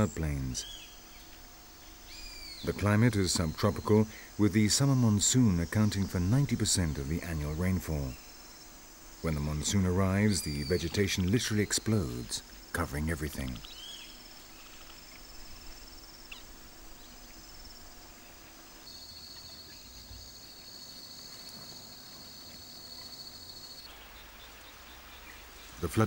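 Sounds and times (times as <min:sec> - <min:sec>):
insects trilling: 0:00.0 - 0:26.0
lower-pitched insect trill: 0:00.0 - 0:26.0.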